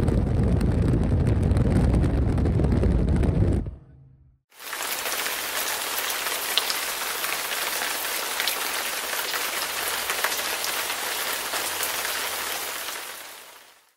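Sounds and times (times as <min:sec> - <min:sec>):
steady hiss with crackles: 0:04.5 - 0:13.9.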